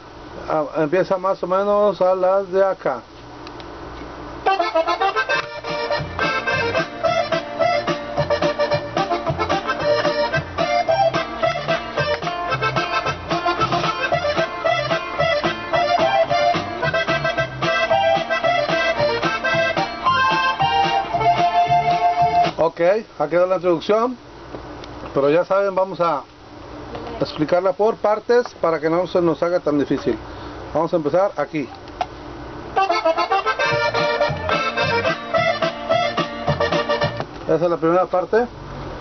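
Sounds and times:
button accordion playing melody: 0:04.4 - 0:22.6, 0:32.8 - 0:37.2.

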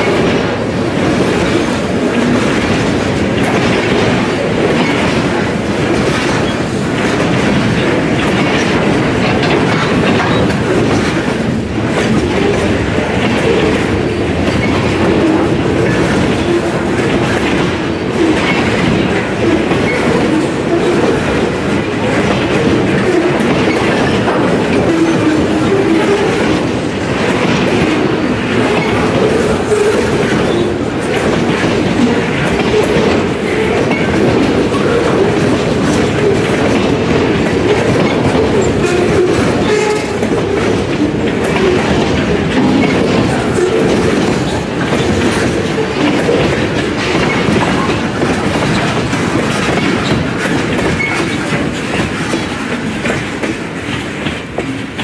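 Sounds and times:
steel wheels clattering over rail joints: 0:00.0 - 0:55.0.

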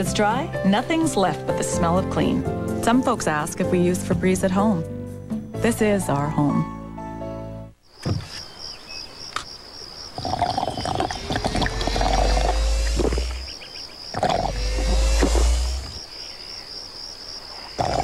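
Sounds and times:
soft music: 0:00.0 - 0:07.8
crickets chirping: 0:07.8 - 0:18.0.

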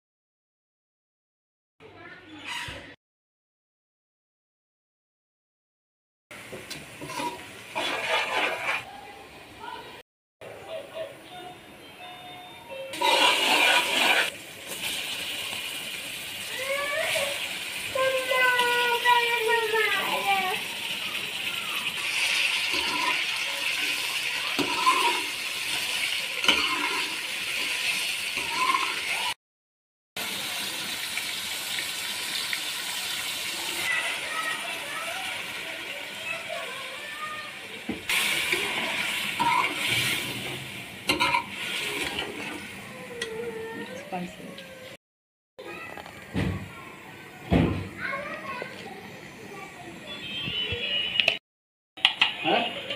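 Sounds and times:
oil sizzling in a wok: 0:06.4 - 0:09.8, 0:12.9 - 0:29.4, 0:30.2 - 0:43.8.

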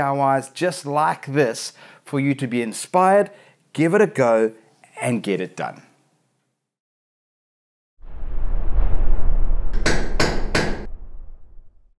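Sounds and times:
low rumbling swell: 0:08.0 - 0:12.0
sharp hammer-like strikes: 0:09.8 - 0:10.9.

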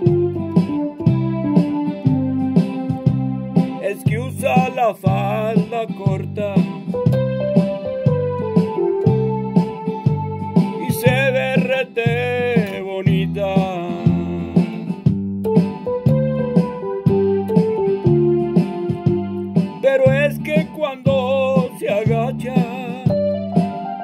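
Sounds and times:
pulsing bass beat: 0:00.0 - 0:24.0
wavering melodic lead: 0:06.9 - 0:11.6, 0:15.4 - 0:19.6, 0:23.0 - 0:24.0.

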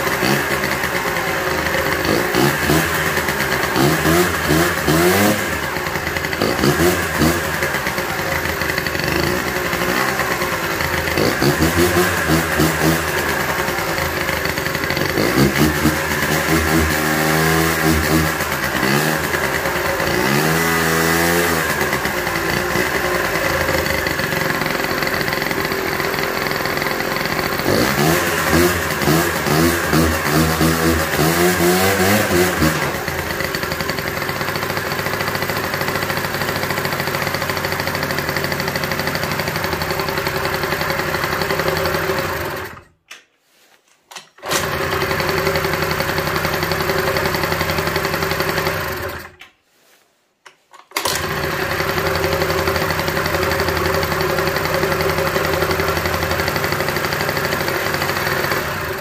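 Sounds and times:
scooter engine revving: 0:00.0 - 0:43.0, 0:44.4 - 0:49.4, 0:50.9 - 0:59.0.

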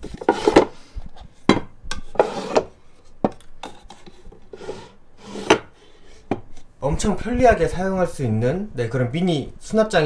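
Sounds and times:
wood scraping on wood: 0:00.0 - 0:00.8, 0:02.1 - 0:06.4.

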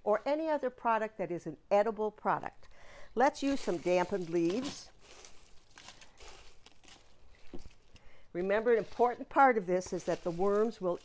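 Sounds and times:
wet leaves rustling: 0:03.4 - 0:11.0.

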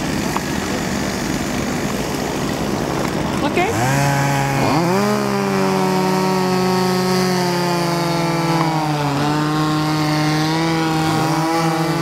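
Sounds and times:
motor running: 0:00.0 - 0:12.0.

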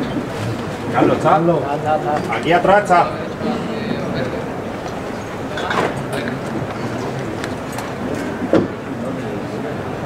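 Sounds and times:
murmur of street crowd: 0:00.0 - 0:10.0.

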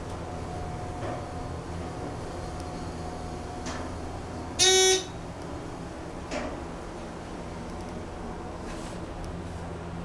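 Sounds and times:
faint steady elevator hum: 0:00.0 - 0:10.0
short buzzy elevator beep: 0:04.6 - 0:05.2.

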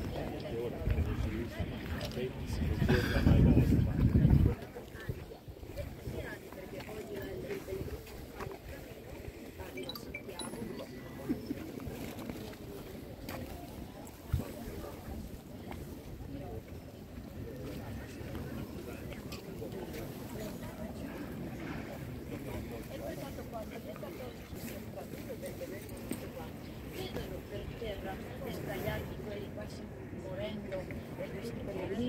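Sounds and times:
wind rumbling on microphone: 0:00.0 - 0:06.4
faint voices: 0:00.0 - 0:32.0
indistinct chatter: 0:00.0 - 0:32.0.

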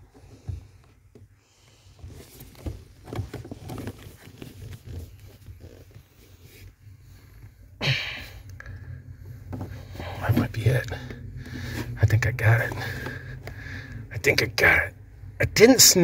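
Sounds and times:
rustling of wiring and plastic: 0:00.0 - 0:06.8.

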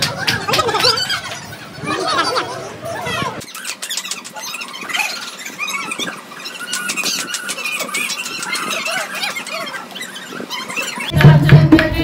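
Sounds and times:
dogs squealing and whining: 0:00.2 - 0:11.1.

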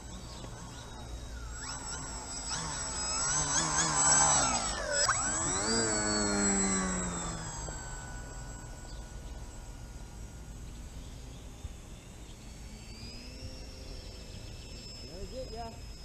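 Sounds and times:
model aircraft propeller whine: 0:00.0 - 0:16.0.

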